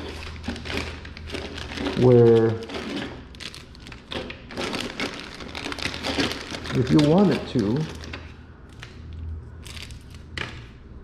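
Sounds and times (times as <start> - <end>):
plastic bag crinkling: 0.0 - 10.4.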